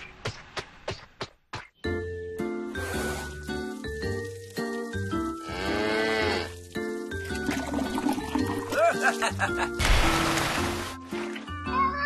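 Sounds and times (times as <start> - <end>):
cartoon background music: 1.8 - 12.0.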